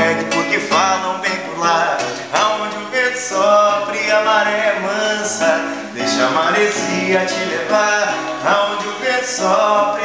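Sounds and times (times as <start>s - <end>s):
man singing: 0.0s - 10.0s
strummed nylon-string guitar: 0.0s - 10.0s.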